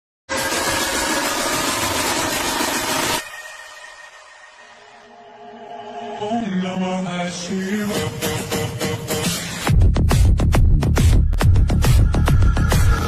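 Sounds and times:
music: 0.3s - 13.0s.

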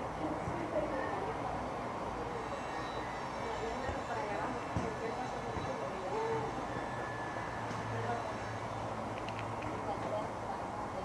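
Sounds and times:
muffled voices: 0.0s - 11.0s.

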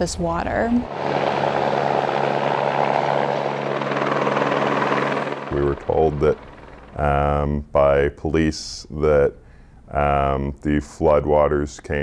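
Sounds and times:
helicopter flying overhead: 0.5s - 7.6s.

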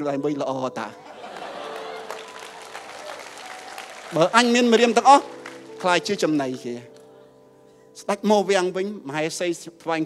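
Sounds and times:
audience applause: 1.1s - 6.7s.

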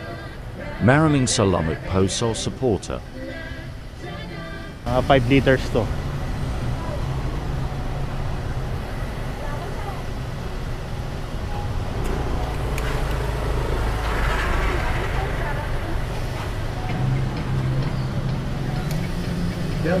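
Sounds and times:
deep engine rumble: 0.0s - 20.0s
traffic noise: 0.0s - 20.0s
vehicle engine idling: 0.0s - 20.0s.

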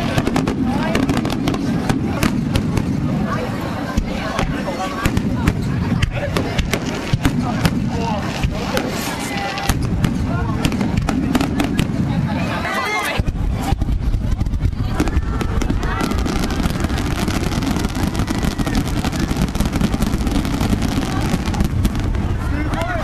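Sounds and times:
crowd voices: 0.0s - 23.0s
fireworks bangs and crackles: 0.0s - 23.0s.

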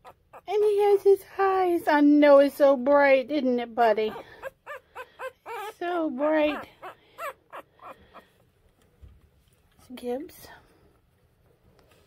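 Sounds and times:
puppy crying in squeaks: 0.0s - 0.5s, 4.1s - 5.8s, 6.4s - 8.2s.

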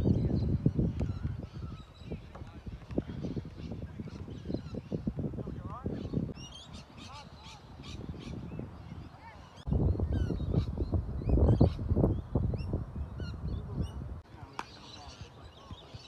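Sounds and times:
birds chirping: 0.0s - 16.0s.

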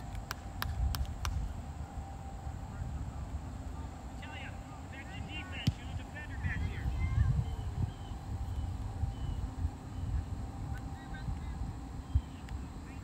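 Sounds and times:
distant players and spectators shouting: 1.6s - 13.0s.

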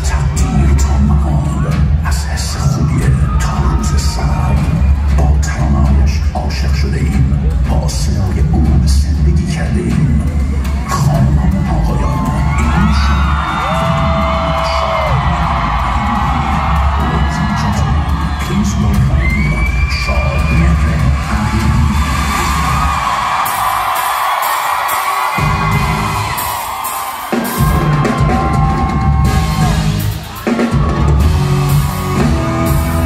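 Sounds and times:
concert crowd cheering and whistling: 0.0s - 6.0s, 10.4s - 33.0s
deep pulsing bass: 30.8s - 33.0s.

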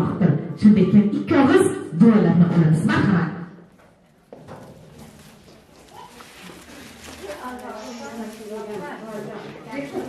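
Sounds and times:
faint background voices: 3.8s - 10.0s.

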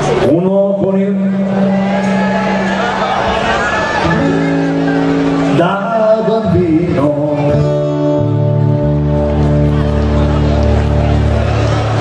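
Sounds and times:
live band music: 1.9s - 12.0s.

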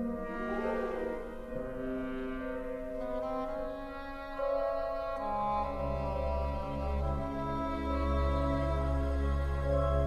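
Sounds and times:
orchestral music with held chords: 0.0s - 10.0s.

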